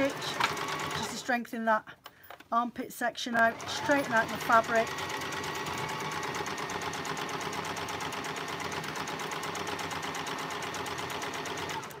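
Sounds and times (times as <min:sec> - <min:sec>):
sewing machine stitching: 0:00.0 - 0:01.3, 0:03.4 - 0:12.0.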